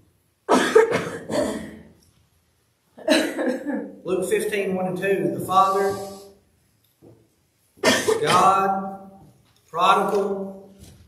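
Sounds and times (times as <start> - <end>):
man coughing: 0.5 - 1.9, 7.8 - 8.6.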